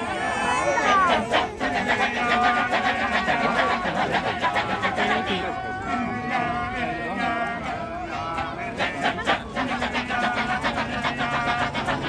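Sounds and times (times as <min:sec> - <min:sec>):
men chanting in chorus: 0:00.0 - 0:12.0.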